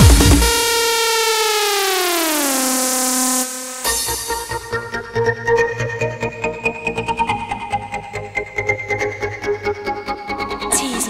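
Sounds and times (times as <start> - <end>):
synthesizer note sliding down: 0.0 - 5.5.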